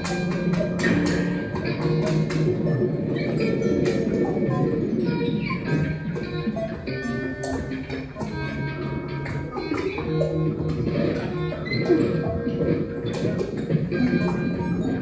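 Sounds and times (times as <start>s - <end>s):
experimental electronic music: 0.0s - 15.0s.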